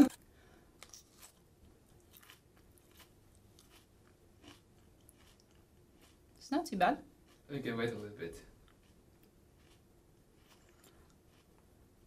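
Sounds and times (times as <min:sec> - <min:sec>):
chewing crunches: 0:00.8 - 0:06.4, 0:07.2 - 0:07.5, 0:08.6 - 0:11.7.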